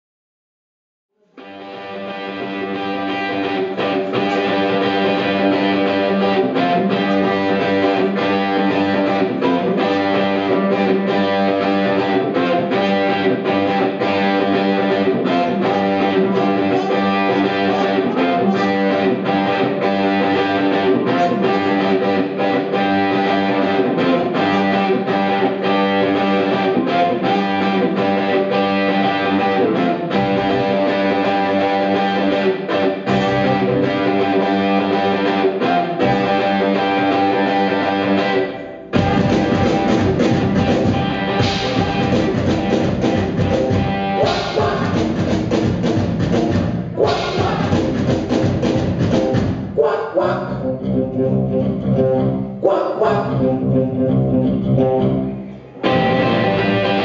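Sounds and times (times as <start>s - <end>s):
electric guitar: 1.3s - 49.8s, 50.5s - 57.0s
live rock band playing: 1.5s - 49.8s, 55.8s - 57.0s.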